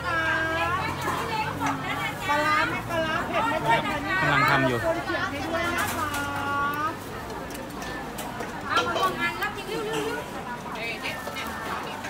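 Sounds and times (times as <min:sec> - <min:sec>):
woman's voice: 0:00.0 - 0:07.0
background chatter: 0:00.0 - 0:12.0
people talking over one another: 0:00.0 - 0:12.0.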